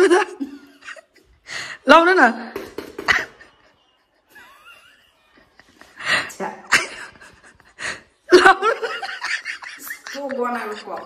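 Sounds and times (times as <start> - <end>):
woman laughing breathily: 3.5 - 8.4.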